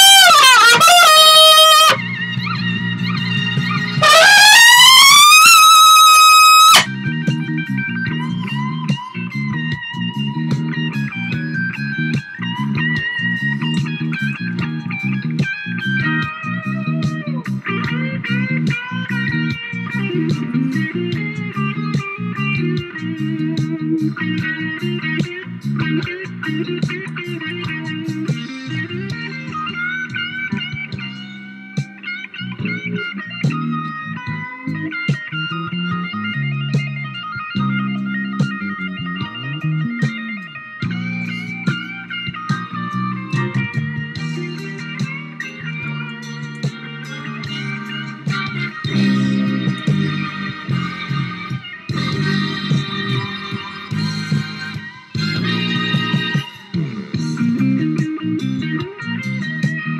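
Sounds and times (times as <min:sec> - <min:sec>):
trumpet high held note: 0:00.0 - 0:02.0, 0:04.0 - 0:06.9
recorded backing track: 0:00.0 - 0:59.9.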